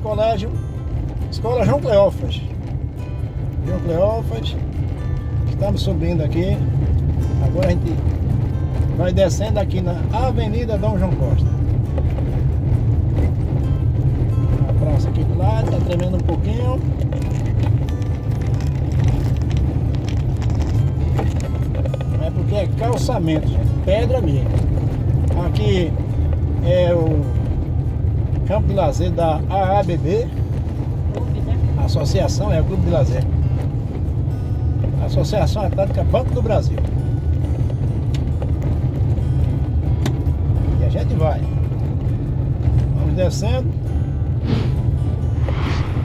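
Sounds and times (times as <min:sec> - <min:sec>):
car tyres rumbling on stone paving: 0:00.0 - 0:46.0
car knocks and rattles: 0:05.5 - 0:42.8.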